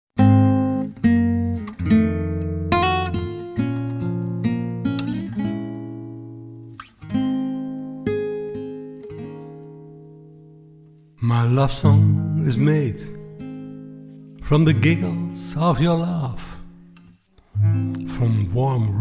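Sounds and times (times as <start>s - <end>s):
acoustic guitar chords: 0.2s - 19.0s.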